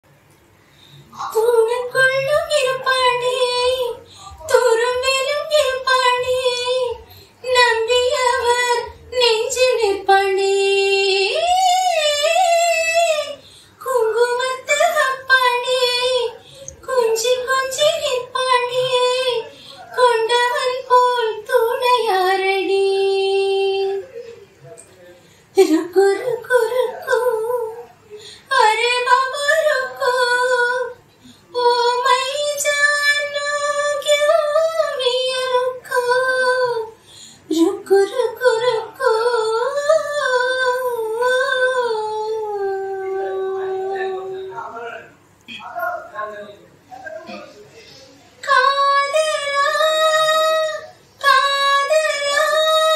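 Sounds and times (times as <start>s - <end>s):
woman singing unaccompanied: 1.1s - 24.2s, 25.5s - 44.6s, 48.4s - 52.9s
woman singing a held vowel: 37.5s - 44.6s.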